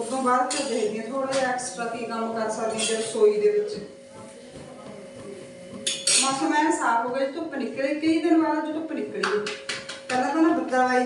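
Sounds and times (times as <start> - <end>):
metal utensils clattering: 2.8 - 3.1, 5.9 - 6.5.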